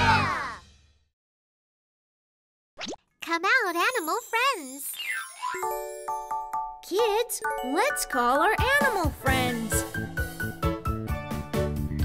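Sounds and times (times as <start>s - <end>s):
children's song intro: 3.6s - 10.6s.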